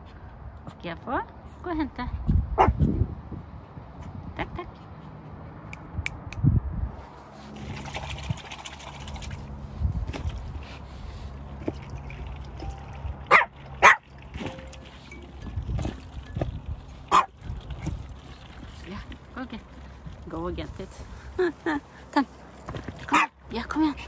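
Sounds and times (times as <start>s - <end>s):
small dog barking: 2.6s - 2.8s, 13.3s - 14.0s, 17.1s - 17.3s, 23.1s - 23.3s.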